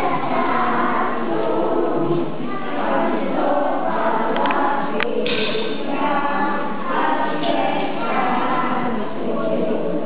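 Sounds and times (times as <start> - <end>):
children singing in unison: 0.0 - 10.0.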